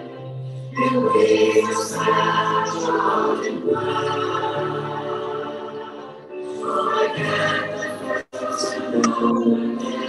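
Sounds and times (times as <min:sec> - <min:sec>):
choir singing a cappella: 0:00.0 - 0:10.0.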